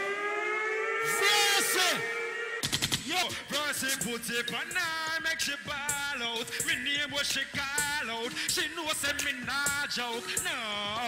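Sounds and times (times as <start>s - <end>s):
rising siren tone: 0.0s - 2.8s.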